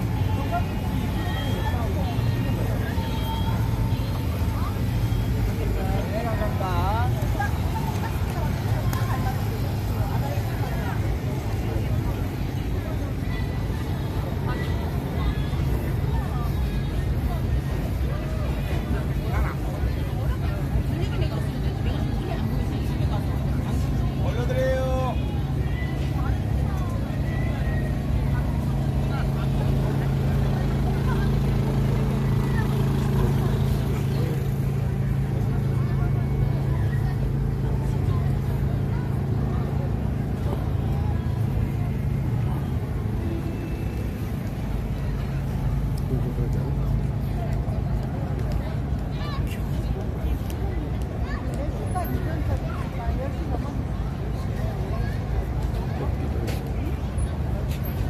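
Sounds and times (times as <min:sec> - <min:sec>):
low traffic hum: 0:00.0 - 0:58.0
voices of passers-by: 0:00.0 - 0:58.0.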